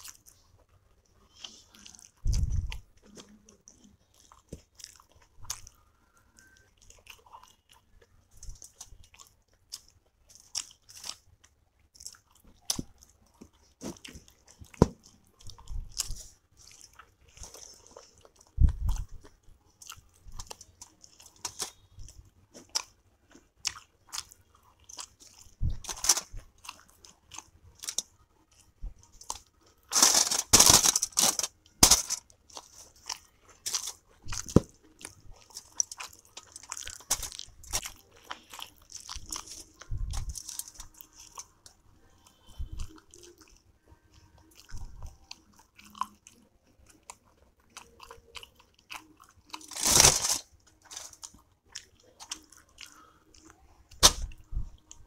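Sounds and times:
chewing with wet mouth smacks: 0.0s - 29.9s, 31.6s - 49.8s, 50.4s - 55.0s.

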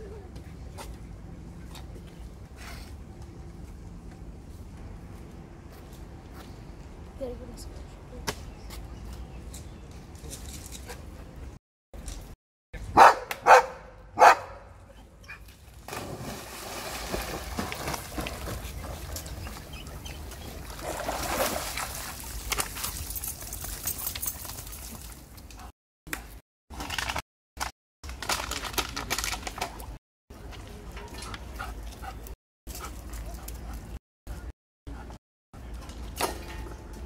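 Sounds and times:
outdoor background noise: 0.0s - 37.0s
dog barking: 12.9s - 14.7s
splashing through water: 15.8s - 23.7s.

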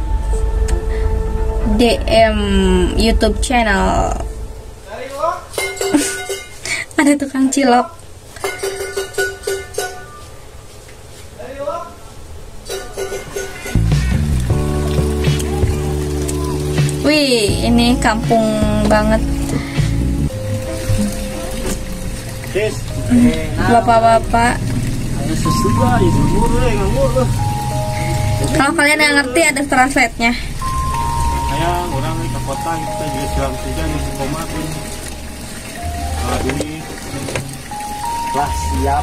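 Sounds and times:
low hum: 0.0s - 6.2s
held musical note: 0.0s - 6.5s, 13.0s - 39.0s
man speaking: 22.5s - 23.9s, 25.2s - 27.4s, 31.4s - 34.9s, 36.1s - 37.2s, 38.3s - 39.0s.

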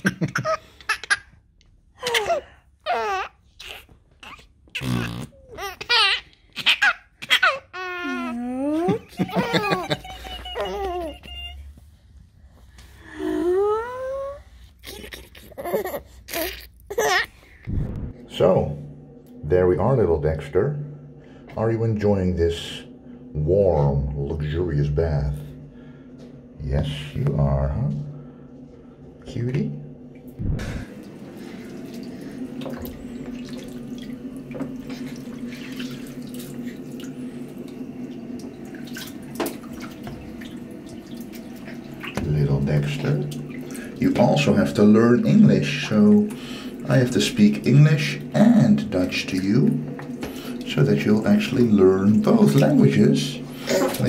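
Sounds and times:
baby cooing: 2.0s - 11.6s, 13.6s - 17.3s
steady low hum: 8.1s - 54.0s
bathwater splashing and trickling: 30.2s - 54.0s.

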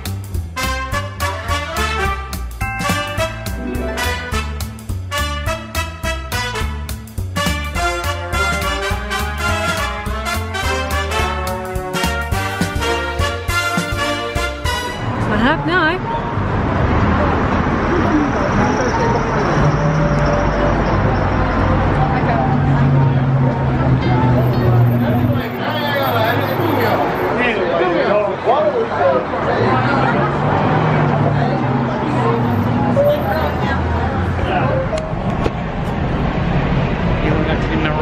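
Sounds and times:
pedestrian voices: 0.0s - 5.6s, 6.6s - 38.0s
traffic noise: 0.0s - 38.0s.

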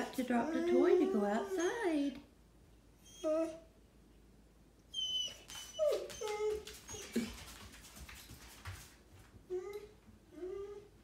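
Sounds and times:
dog whining: 0.2s - 2.1s, 3.0s - 3.7s, 4.9s - 7.4s, 9.5s - 11.0s.

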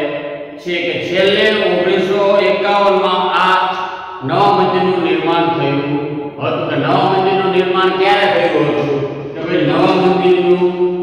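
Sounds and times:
man lecturing: 0.0s - 11.0s.

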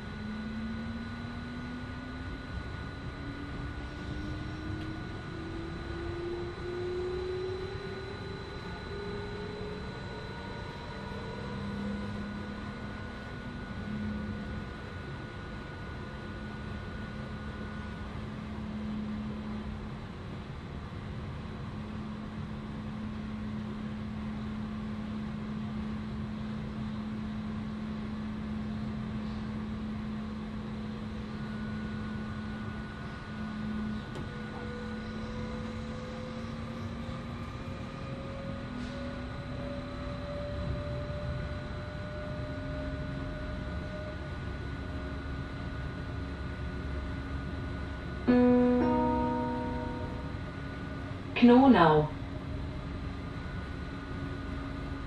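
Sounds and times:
electric hum: 48.2s - 52.2s
faint whine rising in pitch: 48.3s - 51.7s.

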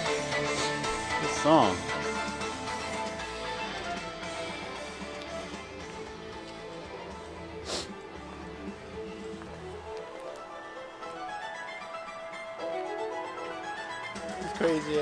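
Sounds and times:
music through car speakers: 0.0s - 9.8s.

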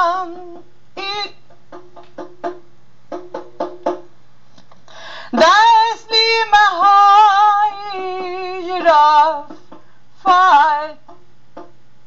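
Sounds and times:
woman singing long notes: 0.0s - 1.4s, 10.2s - 11.0s.

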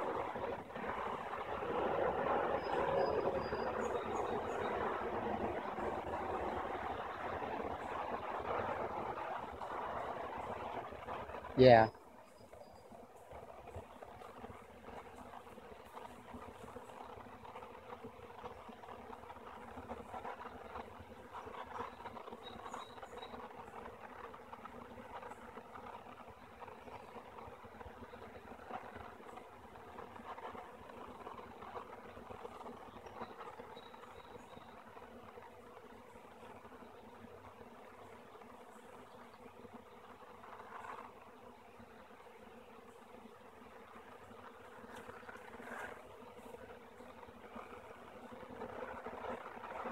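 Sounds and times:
bees buzzing: 35.1s - 49.0s.

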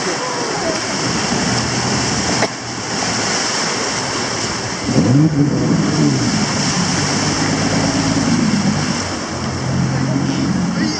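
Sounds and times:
outboard motor idling: 0.0s - 10.5s
surf washing: 0.0s - 10.9s.

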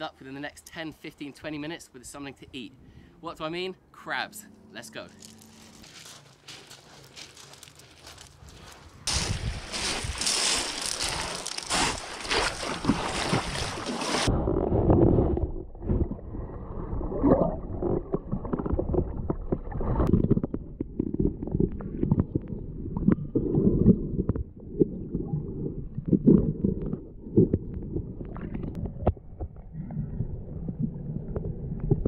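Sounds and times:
sea water washing over shingle: 9.1s - 14.3s
underwater rumble of moving water: 12.7s - 32.0s.

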